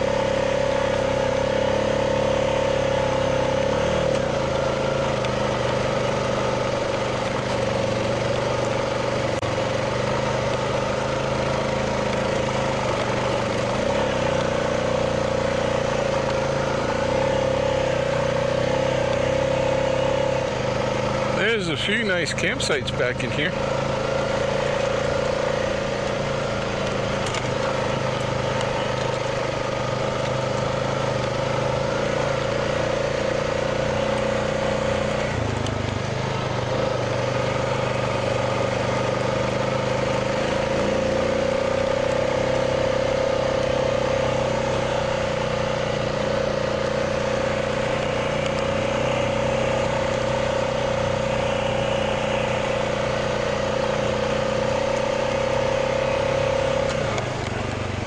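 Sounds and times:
atv engine running: 0.0s - 58.0s.

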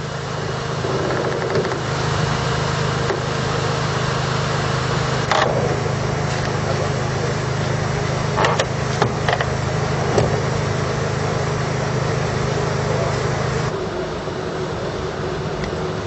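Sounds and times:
engine humming: 0.0s - 16.0s
sharp clicks and knocks: 1.0s - 1.8s, 8.4s - 9.5s.

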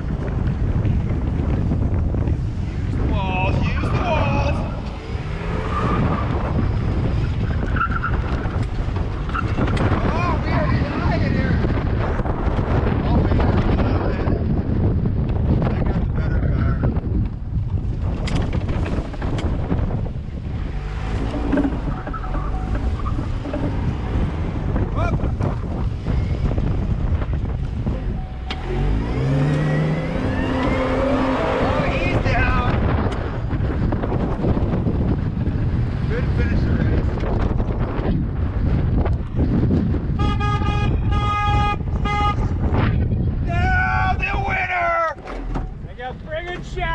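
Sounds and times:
wind buffeting camera: 0.0s - 46.9s
car engine under load: 16.9s - 36.1s, 44.6s - 46.9s
tyres on loose dirt: 17.9s - 24.8s.

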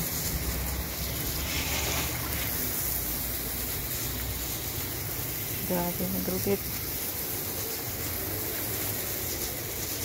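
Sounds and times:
water splashing over tiled paving: 0.0s - 10.0s.

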